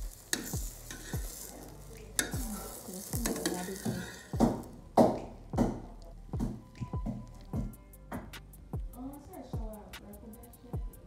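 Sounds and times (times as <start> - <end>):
light sizzle: 0.0 - 9.4
metal spoon scraping frying pan: 0.1 - 4.6.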